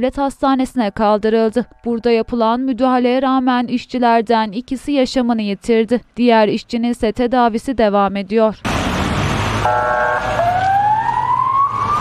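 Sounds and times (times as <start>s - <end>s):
ambulance siren: 9.6s - 12.0s.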